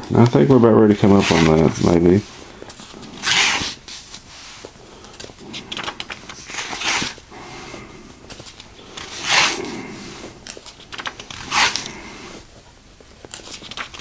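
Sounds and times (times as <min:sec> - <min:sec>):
pages turning: 0:00.0 - 0:14.0.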